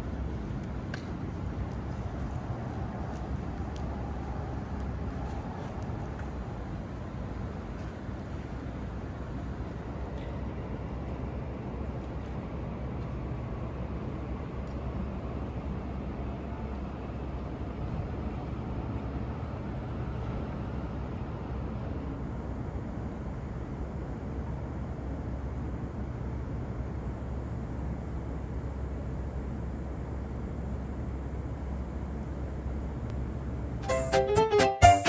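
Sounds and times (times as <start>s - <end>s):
traffic rumble: 0.0s - 33.9s.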